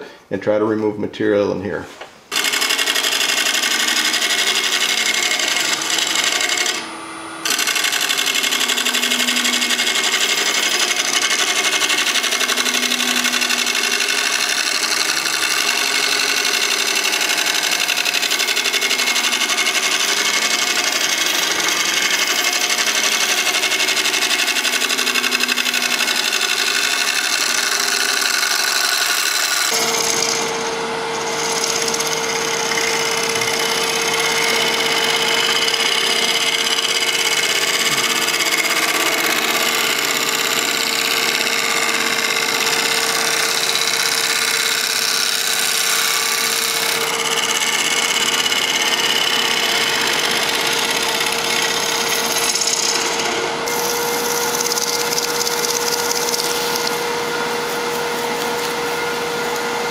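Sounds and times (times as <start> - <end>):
scraper cutting wood on lathe: 2.3 - 59.9.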